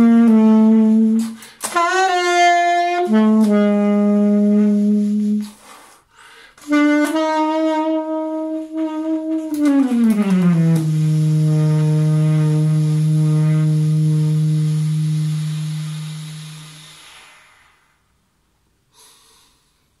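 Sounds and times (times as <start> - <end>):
saxophone playing low note: 0.0 - 5.6, 6.6 - 17.7
soft breathy noise: 5.5 - 6.6, 18.9 - 20.0.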